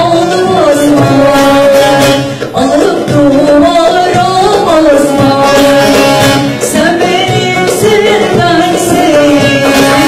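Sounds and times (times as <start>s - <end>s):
woman singing folk song: 0.0s - 10.0s.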